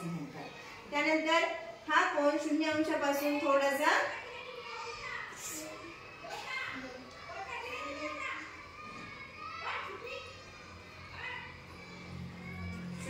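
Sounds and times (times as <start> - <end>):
children talking: 0.0 - 13.0.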